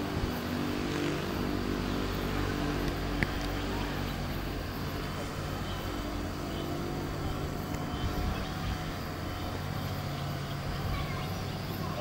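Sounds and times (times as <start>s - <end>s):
faint voices: 0.0s - 12.0s
low hum: 0.0s - 12.0s
wash of noise: 0.0s - 12.0s.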